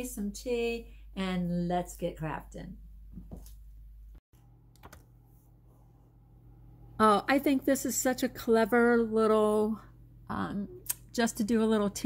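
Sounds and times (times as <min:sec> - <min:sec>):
low steady hum: 0:03.7 - 0:12.0.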